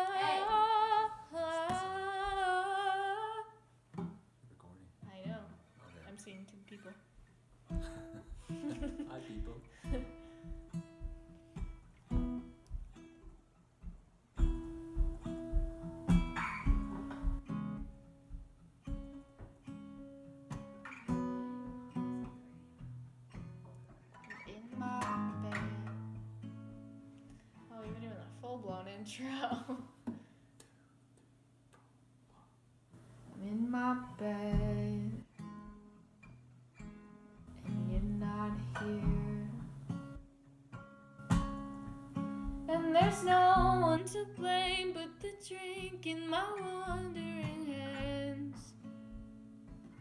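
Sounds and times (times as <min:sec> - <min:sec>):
acoustic guitar playing: 0:00.0 - 0:04.3, 0:07.2 - 0:29.9, 0:33.0 - 0:50.0.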